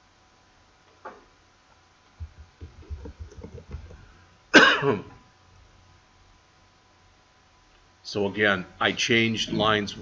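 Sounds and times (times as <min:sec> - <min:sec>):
muffled keyboard typing: 0:02.2 - 0:04.0
loud cough: 0:04.5 - 0:05.2.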